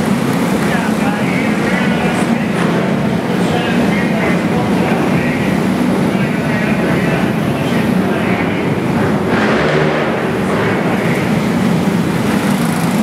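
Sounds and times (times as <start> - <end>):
racing kart engines: 0.0 - 13.0.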